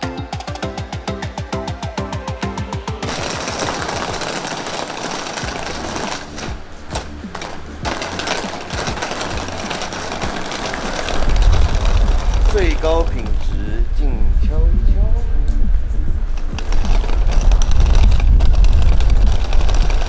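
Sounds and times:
background music with steady beat: 0:00.0 - 0:20.0
suitcase wheels rolling on paving: 0:03.1 - 0:13.8, 0:16.4 - 0:20.0
deep rumble: 0:11.2 - 0:20.0.

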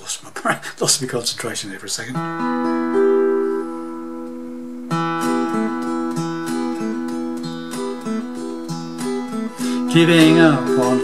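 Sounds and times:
acoustic guitar strumming and picking: 0:02.1 - 0:11.0.

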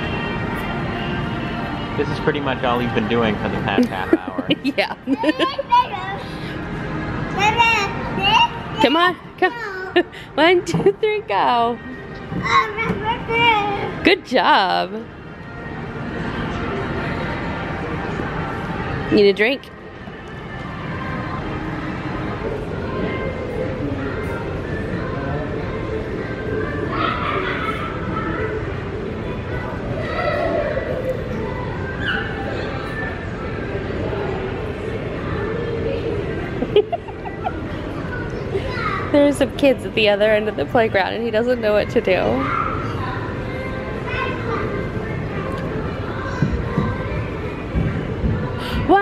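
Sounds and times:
music playing: 0:00.0 - 0:27.4
background hubbub: 0:00.0 - 0:49.0
children's voices and chatter: 0:02.9 - 0:14.1, 0:20.0 - 0:49.0.

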